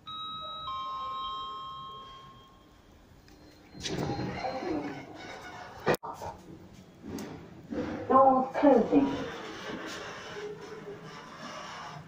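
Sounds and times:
lift chime ding-dong: 0.0s - 4.2s.

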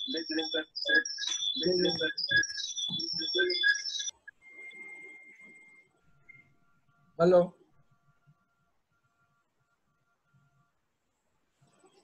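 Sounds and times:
garbled distorted voice: 0.0s - 3.6s
faint whistle-like tone: 0.0s - 6.6s
steady electronic tones: 0.0s - 7.4s.

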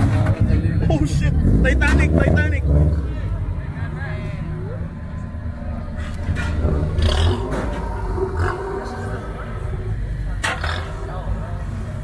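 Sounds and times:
crowd voices: 0.0s - 12.0s
pickup truck engine rumbling: 0.0s - 12.0s.

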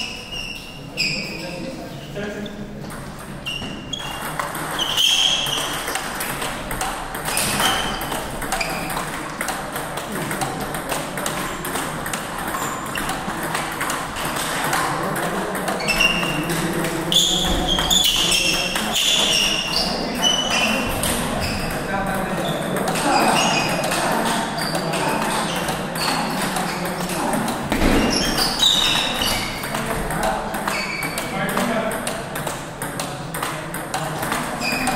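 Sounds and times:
short high-pitched squeaks: 0.0s - 1.6s, 3.4s - 6.0s, 28.0s - 29.7s, 30.7s - 31.3s
table tennis balls clicking: 2.8s - 34.9s.

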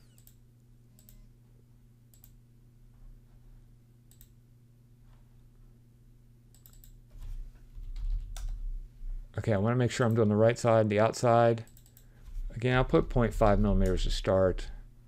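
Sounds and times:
computer mouse clicks: 0.0s - 0.4s, 1.0s - 1.2s, 2.1s - 2.4s, 4.1s - 4.4s, 6.5s - 7.0s, 11.7s - 12.1s
steady low hum: 0.0s - 15.0s
keyboard typing: 7.8s - 8.6s.

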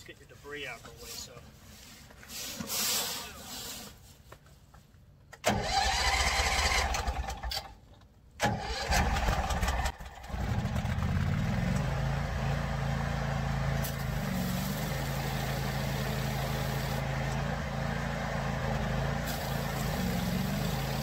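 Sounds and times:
pressure washer engine starting: 5.4s - 7.8s, 8.4s - 21.0s.

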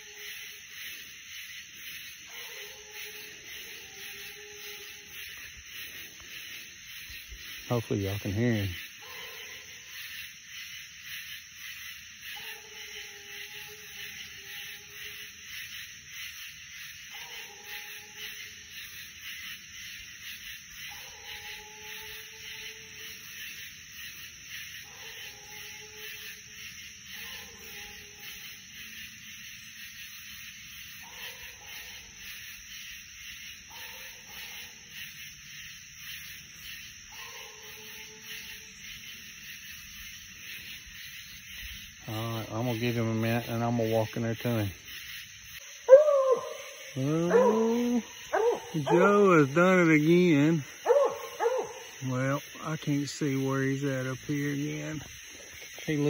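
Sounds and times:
distant hound bawling: 45.8s - 52.1s.

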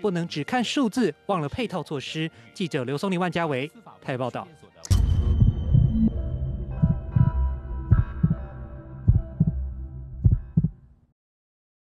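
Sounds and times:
sustained synthesized tones: 4.9s - 10.0s.

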